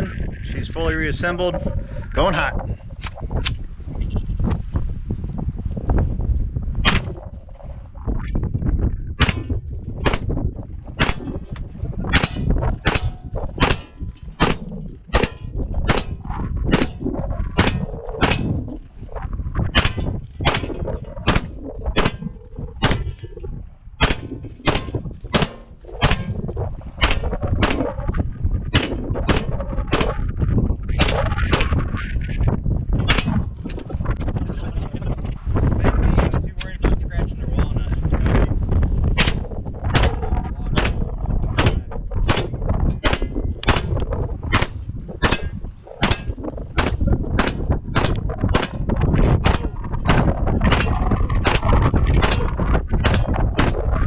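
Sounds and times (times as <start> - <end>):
gun firing single shots: 6.8 - 7.2, 9.2 - 10.3, 11.0 - 11.4, 12.1 - 17.0, 17.6 - 18.6, 19.7 - 23.3, 24.0 - 26.4, 27.0 - 27.8, 28.7 - 30.2, 31.0 - 31.8, 39.2 - 40.2, 40.8 - 53.8.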